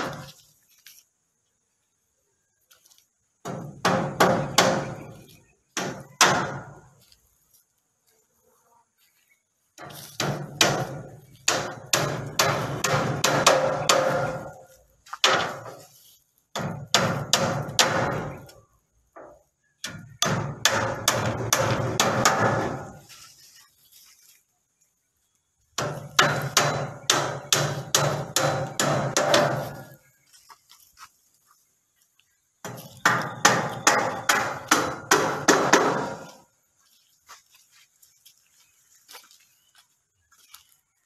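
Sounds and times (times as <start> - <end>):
hammering on bamboo slats: 0.0 - 0.4, 3.4 - 7.0, 9.8 - 15.9, 16.5 - 23.1, 25.8 - 30.0, 32.6 - 36.5.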